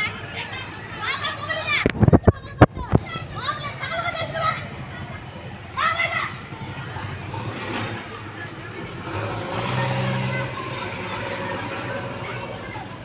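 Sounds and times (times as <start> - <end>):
people's voices outdoors: 0.0 - 13.0.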